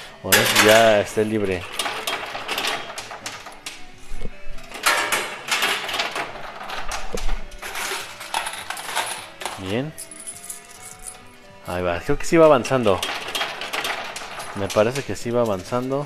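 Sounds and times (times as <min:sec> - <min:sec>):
coins clattering onto metal: 0:00.3 - 0:04.0, 0:04.6 - 0:11.7, 0:12.4 - 0:16.0.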